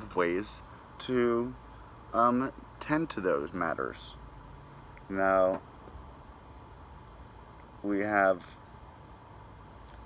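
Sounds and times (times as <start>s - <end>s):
crickets chirping faintly: 0.0s - 10.0s
low background hum: 0.0s - 10.0s.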